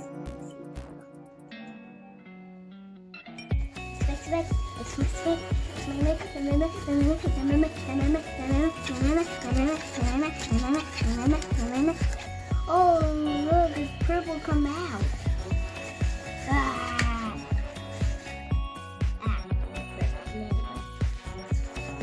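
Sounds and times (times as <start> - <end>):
steady drum beat: 3.5 - 22.0.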